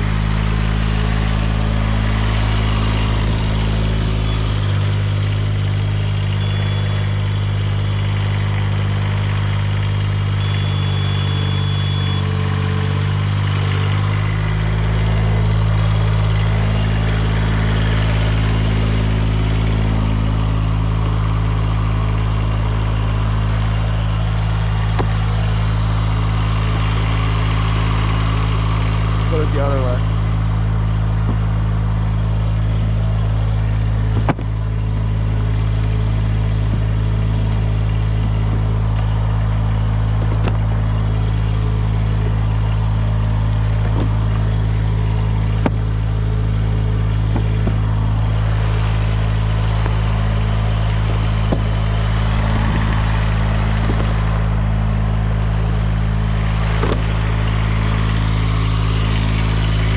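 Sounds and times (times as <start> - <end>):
lift engine running: 0.0 - 59.9.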